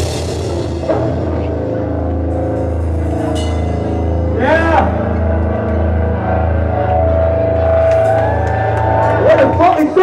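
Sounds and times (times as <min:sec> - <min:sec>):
low bass pulse: 0:00.0 - 0:09.7
droning chord: 0:00.0 - 0:10.0.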